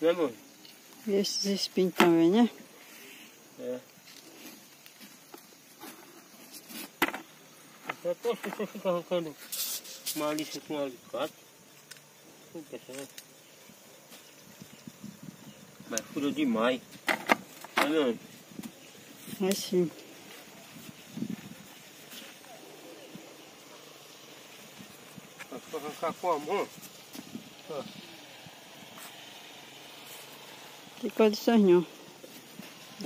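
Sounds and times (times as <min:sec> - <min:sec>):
faint outdoor hiss: 0:00.0 - 0:33.0.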